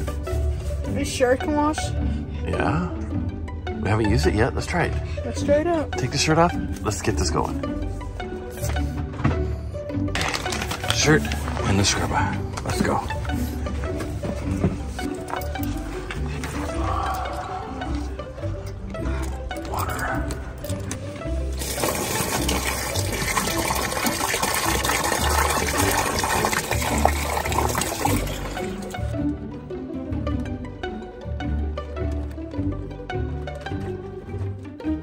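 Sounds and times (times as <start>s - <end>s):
background music with low beat: 0.0s - 35.0s
water rushing into bag: 10.1s - 13.5s, 21.5s - 29.2s.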